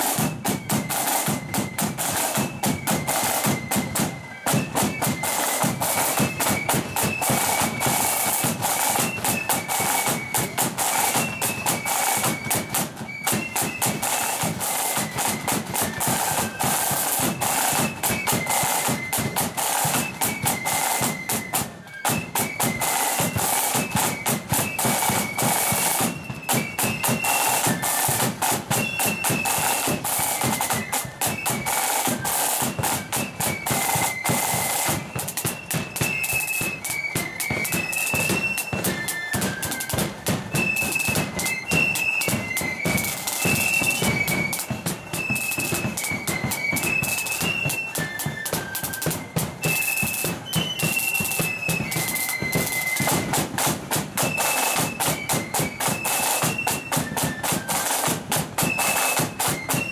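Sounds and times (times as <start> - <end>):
flute melody: 0.0 - 59.9
rapid side drum strokes: 0.0 - 59.9.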